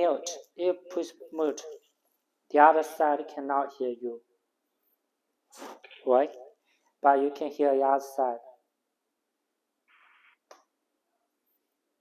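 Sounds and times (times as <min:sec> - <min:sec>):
man speaking: 0:00.0 - 0:01.9.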